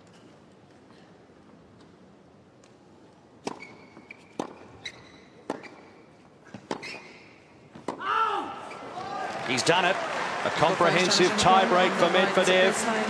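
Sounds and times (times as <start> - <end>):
racket striking tennis ball: 3.4 - 8.1
sneaker squeaks on court: 3.5 - 7.5.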